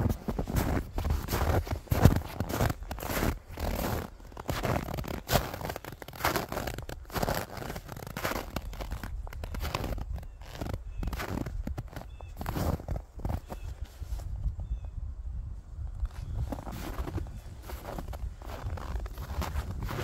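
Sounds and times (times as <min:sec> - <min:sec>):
footsteps crunching in snow: 0:00.0 - 0:14.4, 0:16.1 - 0:20.0.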